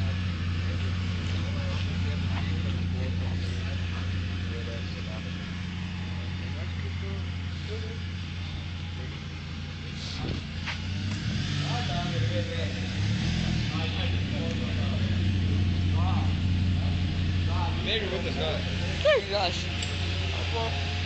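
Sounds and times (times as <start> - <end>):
car engine running: 0.0 - 21.0.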